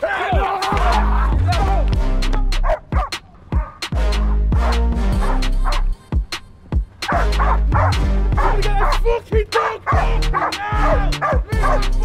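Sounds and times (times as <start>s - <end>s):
music with heavy bass beat: 0.2s - 12.0s
dog barking: 2.6s - 3.8s, 5.2s - 5.9s, 7.1s - 9.0s, 9.6s - 10.6s, 11.2s - 11.9s.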